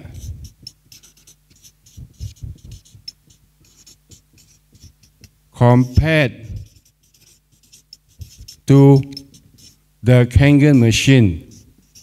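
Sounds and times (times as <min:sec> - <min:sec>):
marker pen scratching on paper: 0:00.0 - 0:09.8, 0:10.4 - 0:12.0.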